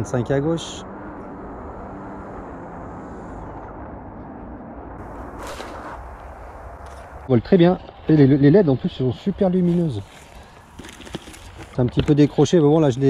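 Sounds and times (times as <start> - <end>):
wind rumble on microphone: 1.2 - 8.1
brief rush of noise: 5.0 - 7.2.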